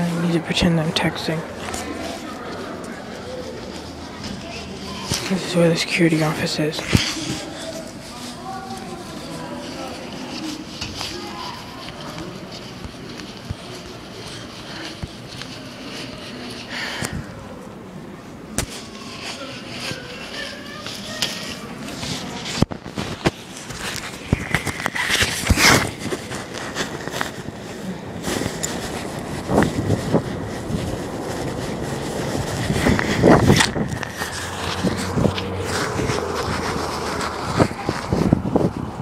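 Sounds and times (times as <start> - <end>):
footsteps: 0.0 - 39.0
camera handling rubbing and knocks: 18.5 - 38.9.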